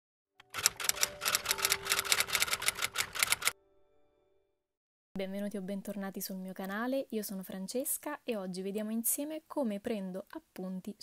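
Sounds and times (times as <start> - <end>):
typewriter keys clacking: 0.5 - 3.5.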